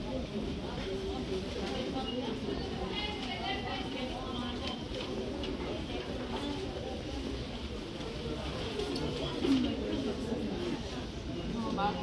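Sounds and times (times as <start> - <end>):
chatter of shoppers: 0.0 - 12.0.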